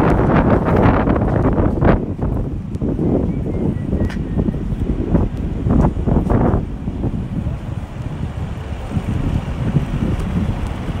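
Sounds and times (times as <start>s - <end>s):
city street traffic: 0.0s - 11.0s
wind buffeting microphone: 0.0s - 11.0s.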